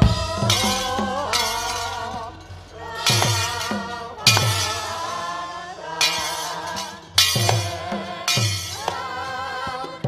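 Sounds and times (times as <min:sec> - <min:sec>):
gamelan music: 0:00.0 - 0:09.4.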